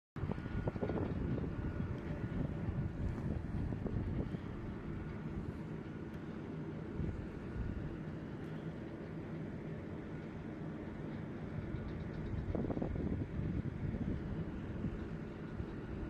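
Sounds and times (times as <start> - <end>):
wind noise on microphone: 0.2 - 5.8, 6.9 - 8.2, 11.5 - 16.0
distant jet engines rumbling: 0.2 - 16.0.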